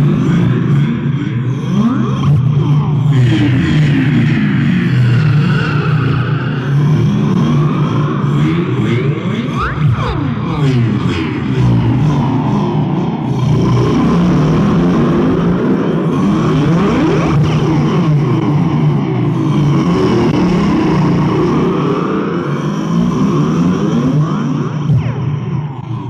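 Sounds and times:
heavy low drone: 0.0s - 26.0s
swirling pitch glides: 9.5s - 12.0s.

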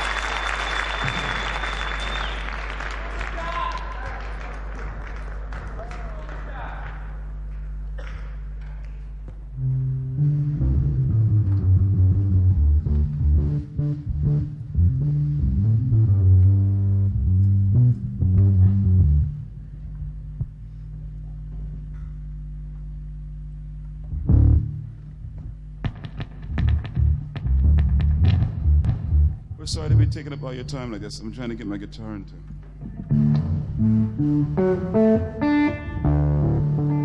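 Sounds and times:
amplifier hum: 6.8s - 37.0s
low electric guitar notes: 9.5s - 20.7s, 23.9s - 30.7s, 32.5s - 37.0s.

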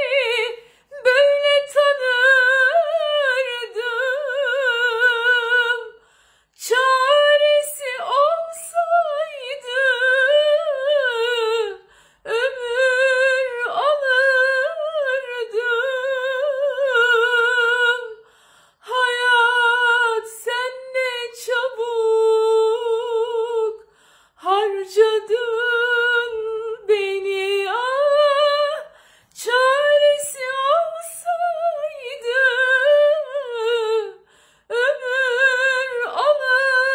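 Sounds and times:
woman singing unaccompanied: 0.0s - 6.0s, 6.6s - 18.2s, 18.8s - 36.9s.

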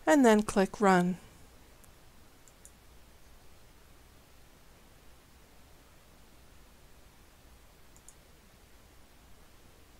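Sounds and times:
faint computer mouse clicks: 1.8s - 2.8s, 7.9s - 8.2s.

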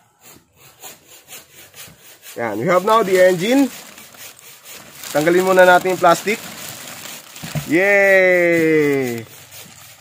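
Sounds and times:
plastic and cardboard rubbing: 0.0s - 10.0s.

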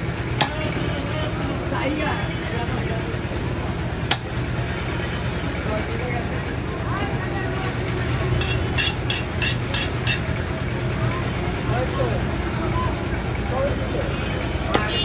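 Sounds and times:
murmur of market voices: 0.0s - 15.0s
traffic: 0.0s - 15.0s
knife chopping meat and bone: 8.4s - 10.3s.

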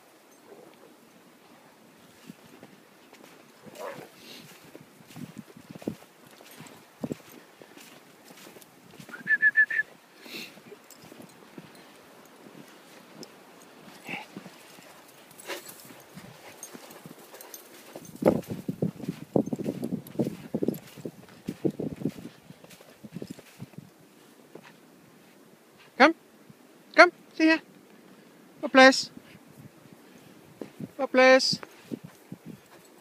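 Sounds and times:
footsteps crunching in snow: 1.4s - 26.0s, 31.6s - 33.0s.

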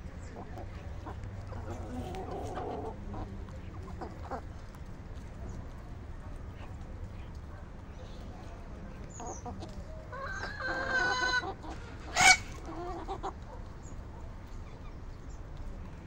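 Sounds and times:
chickens calling: 0.0s - 5.6s, 9.0s - 15.3s
chicken squawk: 9.2s - 13.4s
drawn-out chicken call: 9.2s - 13.6s.

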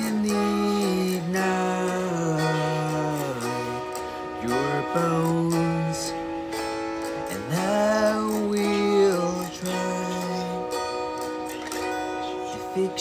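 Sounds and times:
acoustic guitar music: 0.0s - 13.0s.

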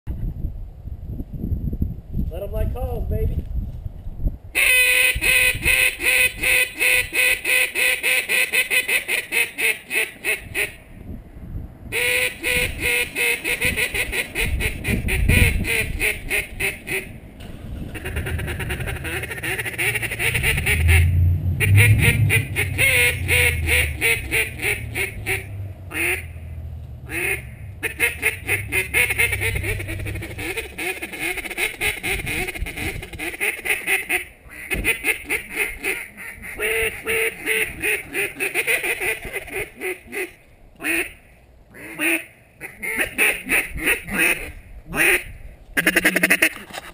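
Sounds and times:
duck call quacking: 4.6s - 10.8s, 11.9s - 17.1s, 17.9s - 26.3s, 27.1s - 46.8s.

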